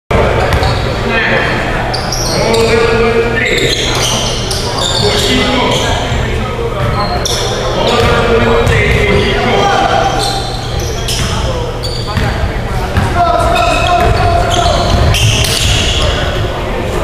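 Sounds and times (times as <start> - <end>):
players' voices echoing: 0.1 - 17.0
sneakers squeaking: 0.1 - 17.0.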